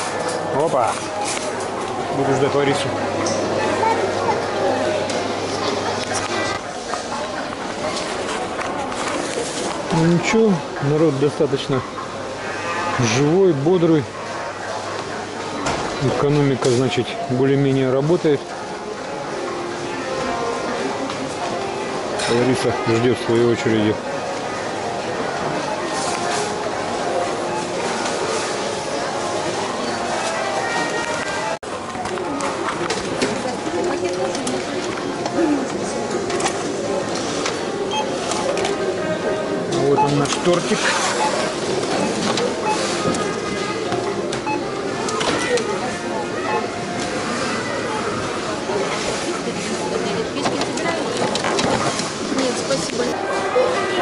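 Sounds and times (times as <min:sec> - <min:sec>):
people talking: 0:13.0 - 0:54.0.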